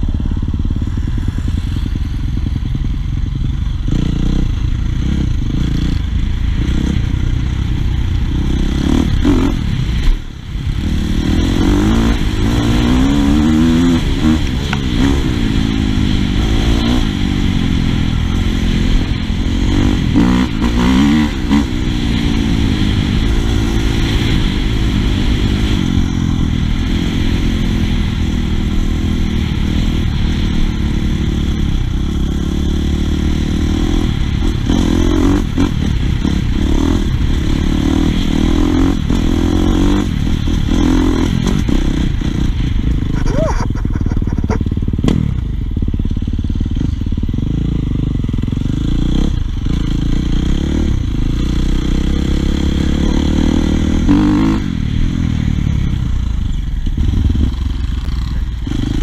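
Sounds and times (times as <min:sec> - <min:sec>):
dirt bike engine revving: 0:00.0 - 0:55.8, 0:56.9 - 0:59.0.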